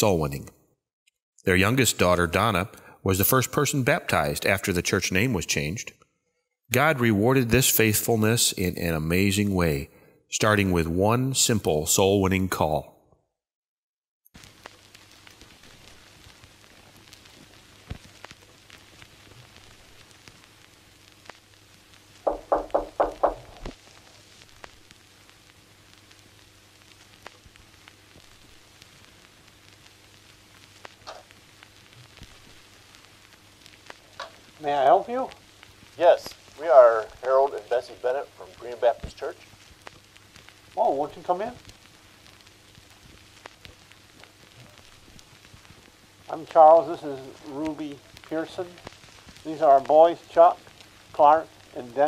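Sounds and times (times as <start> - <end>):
faint hiss: 14.4 - 52.0
small clicks and crackles: 14.4 - 52.0
knuckles knocking on wooden door: 22.2 - 23.7
low hum: 22.3 - 24.8
person speaking: 34.6 - 35.4, 36.0 - 39.4, 40.8 - 41.6, 46.3 - 48.8.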